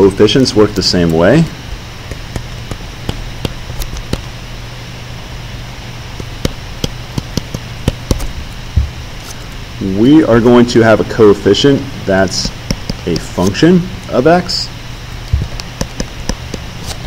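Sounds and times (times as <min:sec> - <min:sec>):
steady low hum: 0:00.0 - 0:17.0
stylus tapping on tablet: 0:06.2 - 0:08.2, 0:12.4 - 0:13.3, 0:15.3 - 0:16.6.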